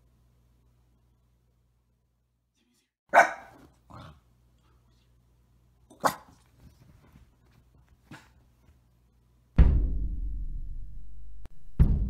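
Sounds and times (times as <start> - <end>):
dog barking: 3.1 - 4.1, 5.9 - 6.4.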